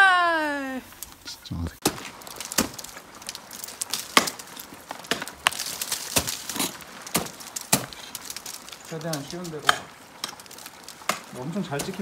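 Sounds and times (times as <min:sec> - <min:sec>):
ice axe striking ice: 0:01.8 - 0:12.0.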